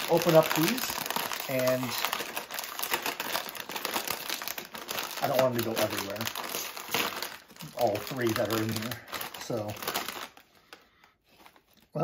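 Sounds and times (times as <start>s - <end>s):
snack bag crinkling: 0.0s - 11.9s.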